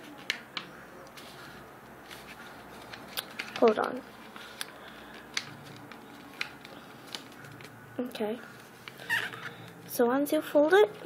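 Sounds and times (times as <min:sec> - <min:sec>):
paper crackling as it is folded: 0:00.1 - 0:10.0.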